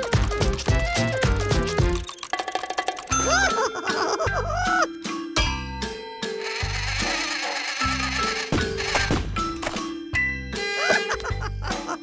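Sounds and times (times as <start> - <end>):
cartoon background music: 0.0 - 12.0
buzzing whirring mechanical effect: 6.4 - 9.1.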